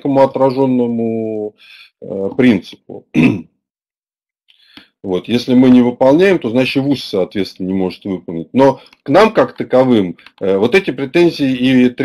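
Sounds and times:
man clearing throat: 0:03.1 - 0:03.6.

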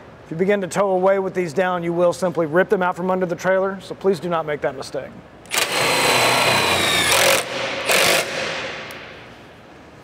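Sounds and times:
cordless drill running: 0:05.5 - 0:08.4.

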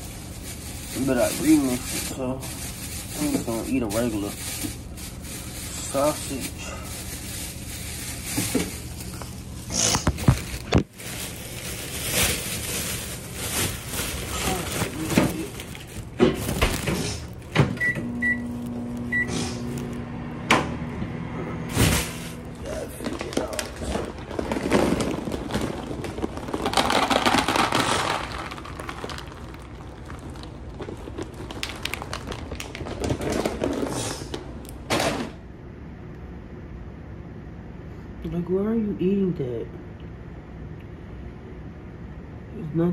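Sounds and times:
microwave humming: 0:00.0 - 0:37.7
microwave keypad beeps: 0:17.8 - 0:19.3.

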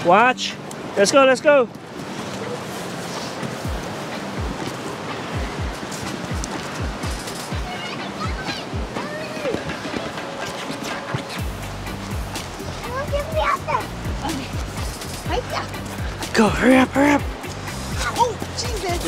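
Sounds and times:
background music: 0:00.0 - 0:19.0
river rushing: 0:00.0 - 0:19.0
footsteps on sandy dirt trail: 0:01.8 - 0:12.9.

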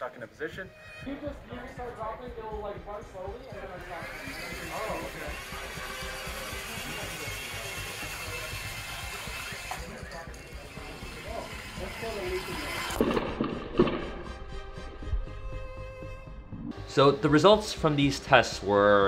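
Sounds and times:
background music: 0:00.0 - 0:19.0
indistinct voices: 0:00.9 - 0:13.1.

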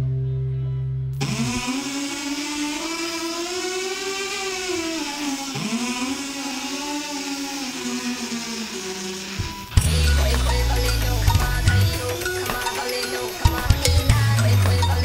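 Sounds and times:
deep bass: 0:00.0 - 0:01.2, 0:09.8 - 0:12.4, 0:13.5 - 0:15.0
buzzy synthesizer tone sliding up: 0:01.2 - 0:15.0.

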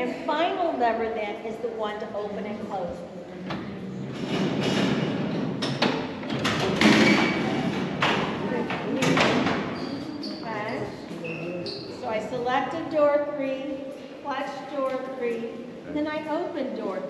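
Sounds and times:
people talking: 0:00.0 - 0:04.0, 0:08.4 - 0:17.0
metal cell door clanking: 0:04.1 - 0:09.8.

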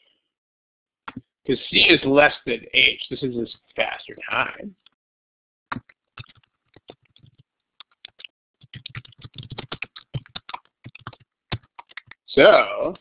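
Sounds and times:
typing on computer keyboard: 0:05.7 - 0:12.2.

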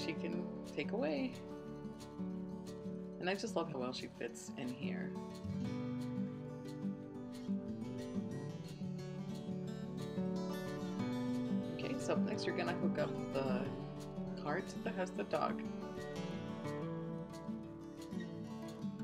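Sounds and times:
strummed acoustic guitar: 0:00.0 - 0:19.0.

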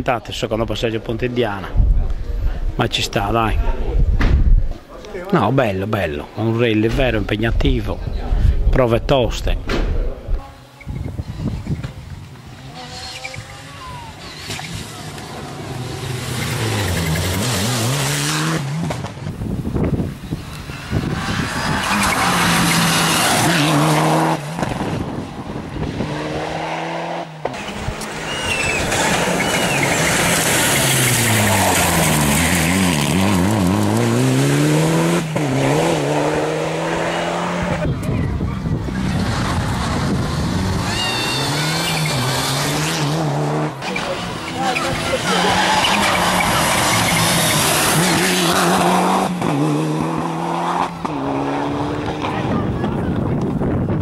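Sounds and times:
rally car engines at full throttle: 0:00.7 - 0:54.0
tire squeals: 0:12.6 - 0:17.6, 0:20.6 - 0:24.3, 0:27.5 - 0:33.4, 0:40.6 - 0:43.2, 0:43.8 - 0:49.1.

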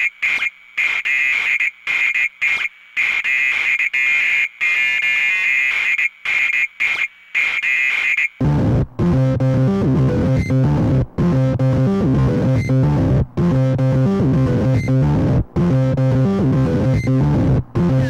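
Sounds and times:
stuttering shrill synthesizer tone: 0:00.0 - 0:18.0.

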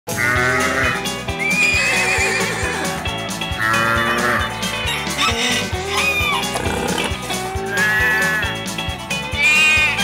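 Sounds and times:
upbeat theme music with drum beat: 0:00.1 - 0:10.0
horse whinny sound effect: 0:01.5 - 0:03.0.

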